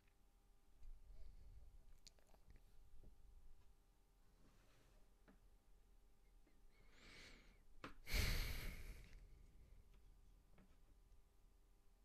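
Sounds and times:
heavy sigh: 0:06.8 - 0:09.3
person breathing in: 0:06.8 - 0:09.4.

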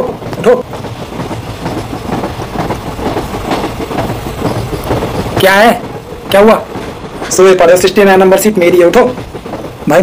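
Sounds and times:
train running on rails: 0:00.0 - 0:10.0.

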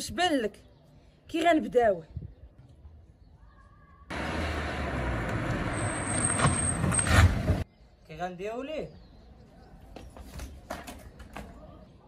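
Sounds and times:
motor vehicle traffic noise: 0:04.1 - 0:07.7.

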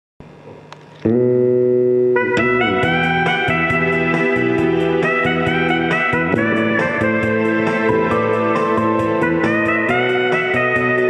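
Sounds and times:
loud sustained chord: 0:01.2 - 0:11.0.

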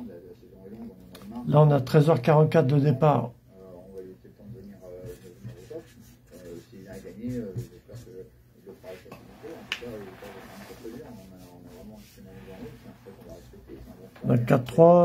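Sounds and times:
quiet speech: 0:00.0 - 0:02.0, 0:02.6 - 0:15.0.

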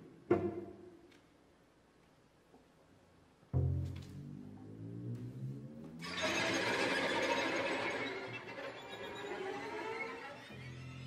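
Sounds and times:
bowed string ensemble: 0:03.6 - 0:11.0.

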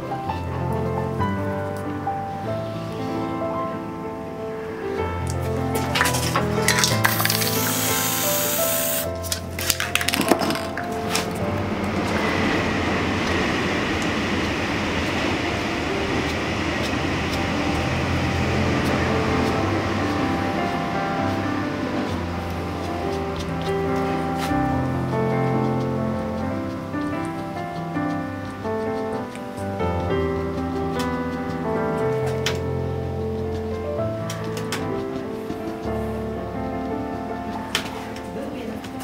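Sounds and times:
spray-paint can hissing: 0:06.0 - 0:09.6.

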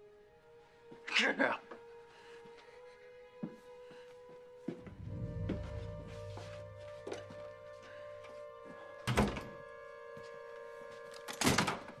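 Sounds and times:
held music chord: 0:04.8 - 0:11.3.

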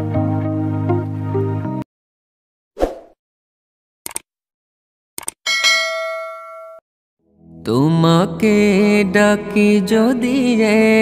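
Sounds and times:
notification bell ding: 0:05.5 - 0:06.8.

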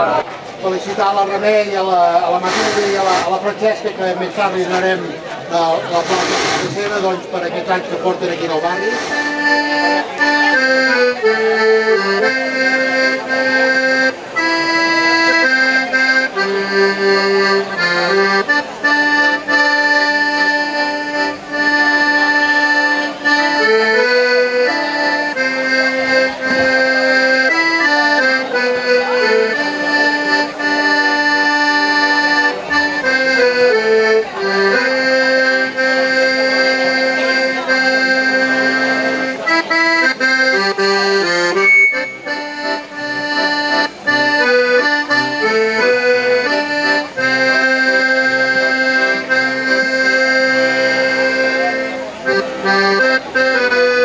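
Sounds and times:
piano accordion playing: 0:00.0 - 0:54.0.

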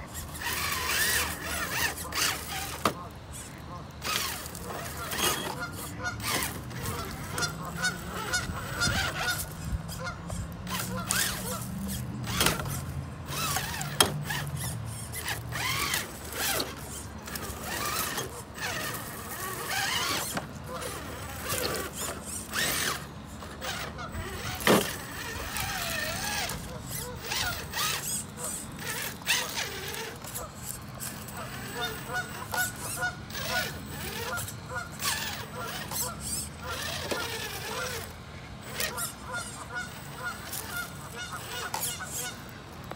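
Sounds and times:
electric motor whining: 0:00.0 - 0:42.9.

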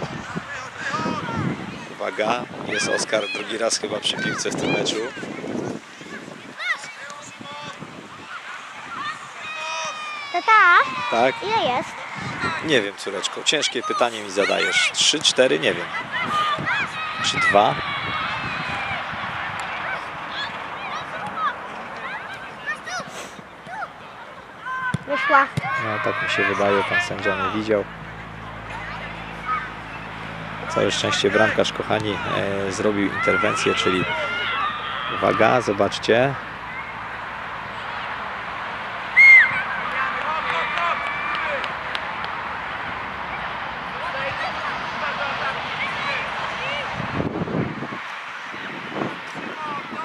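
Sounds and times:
children shouting: 0:00.0 - 0:27.6, 0:28.2 - 0:35.8, 0:39.0 - 0:42.0, 0:42.8 - 0:47.0.

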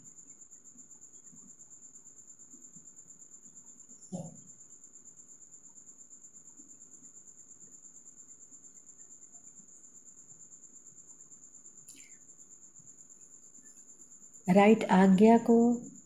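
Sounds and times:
cricket trill: 0:00.0 - 0:16.0.

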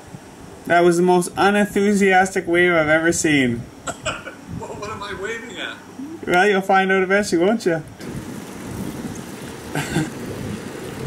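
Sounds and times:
rushing hiss and rumble: 0:00.0 - 0:11.0.

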